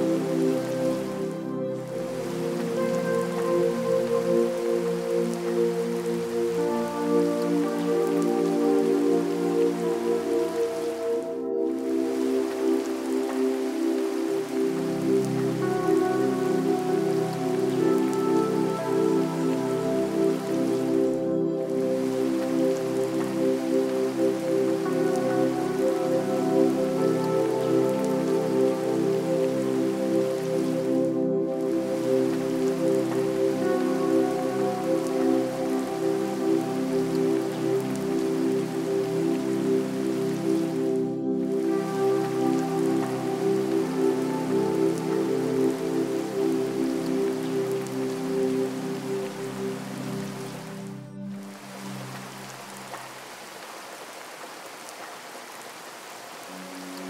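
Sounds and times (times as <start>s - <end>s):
slow ambient music: 0.0s - 57.0s
steady rain: 0.0s - 57.0s.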